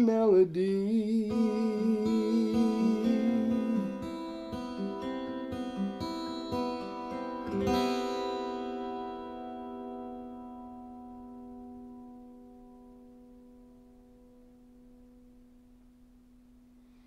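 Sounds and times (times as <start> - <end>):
acoustic guitar chord ringing: 0.0 - 17.0.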